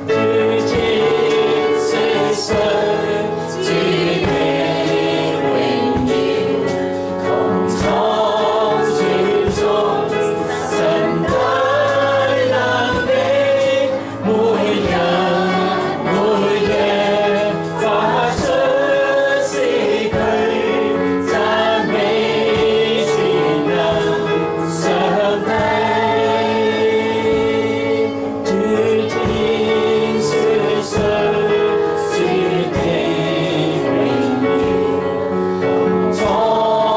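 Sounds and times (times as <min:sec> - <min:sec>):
electronic keyboard chords: 0:00.0 - 0:36.9.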